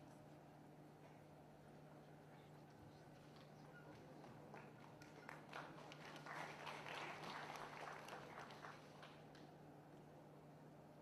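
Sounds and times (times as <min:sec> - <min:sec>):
steady low hum: 0:00.0 - 0:11.0
audience applause: 0:04.0 - 0:09.3.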